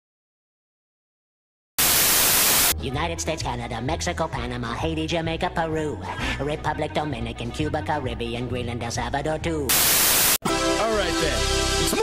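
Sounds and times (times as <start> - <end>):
burst of static hiss: 1.8 - 2.8, 9.7 - 10.4.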